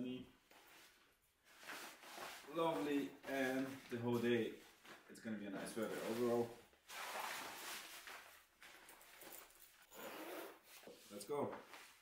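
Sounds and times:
clothing rustling: 0.4s - 12.0s
zipper being done up: 9.9s - 10.9s.

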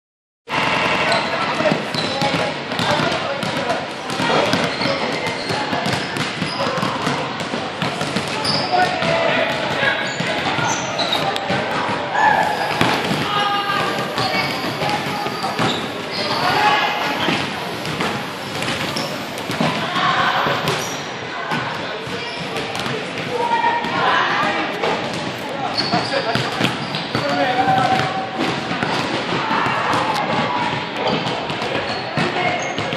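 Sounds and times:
basketballs bouncing on hardwood: 1.6s - 11.9s, 12.7s - 20.9s
players shouting: 8.3s - 22.4s, 23.0s - 31.2s.

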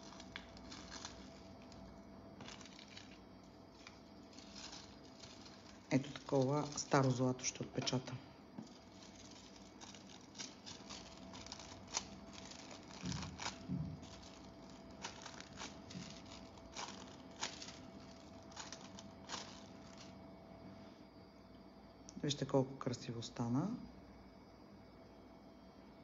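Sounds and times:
dull rustles: 0.0s - 7.2s, 8.6s - 20.2s
foil crinkling: 0.0s - 8.0s, 8.6s - 20.2s.

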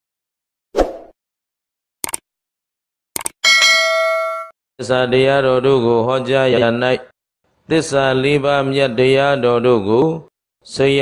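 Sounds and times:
notification bell chime: 3.4s - 4.5s.

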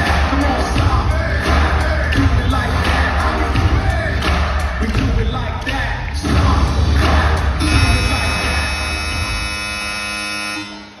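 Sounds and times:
bass-heavy arena music: 0.0s - 11.0s
electronic buzzer tone: 7.6s - 11.0s.

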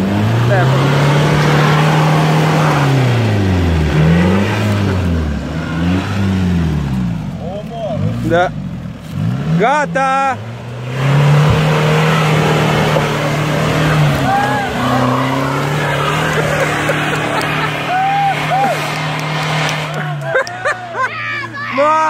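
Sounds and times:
car engine at high revs: 0.0s - 22.0s
tyres working through mud: 0.0s - 22.0s.

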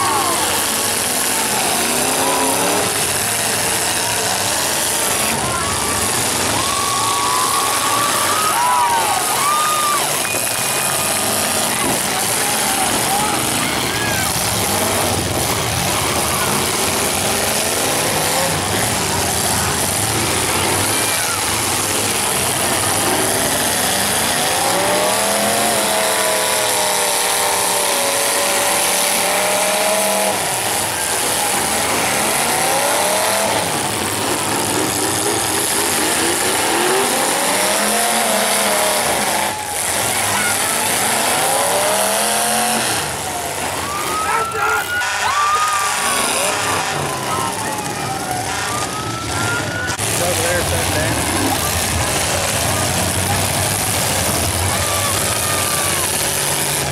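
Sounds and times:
car engines revving: 0.0s - 56.9s.

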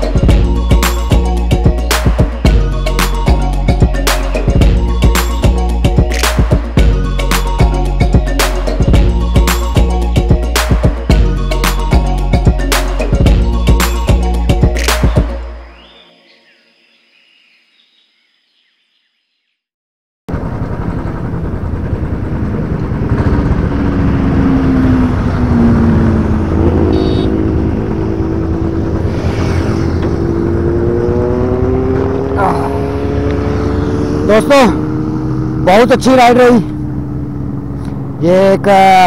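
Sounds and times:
motorcycle engine running: 4.4s - 5.8s, 20.3s - 38.9s.

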